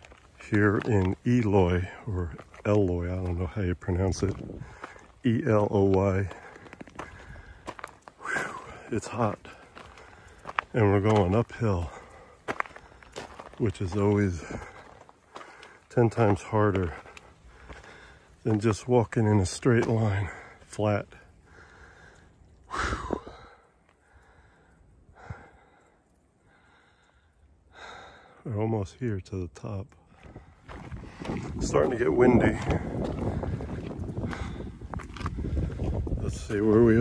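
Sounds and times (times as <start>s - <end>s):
footsteps on gravel: 0.0s - 24.0s, 30.1s - 37.0s
heavy breath out: 4.6s - 5.2s, 6.3s - 10.6s, 14.4s - 15.9s, 16.9s - 18.4s, 20.2s - 28.4s, 32.8s - 36.0s
breathy exhale: 21.4s - 28.4s.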